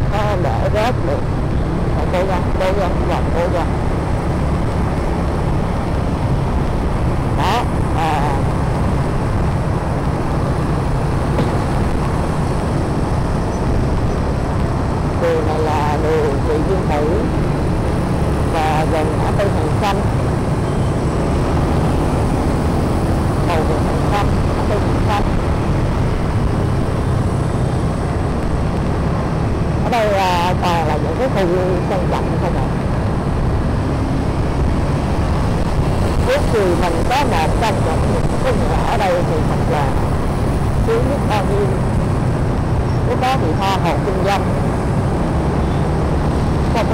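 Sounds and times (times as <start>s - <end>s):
motorbike engine: 0.0s - 46.9s
road traffic: 0.0s - 46.9s
wind on microphone: 0.0s - 46.9s
muffled voice: 11.4s - 11.6s.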